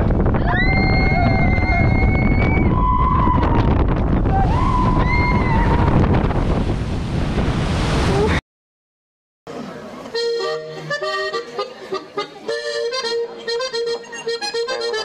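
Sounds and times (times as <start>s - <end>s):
wind rushing on microphone: 0.0s - 8.4s.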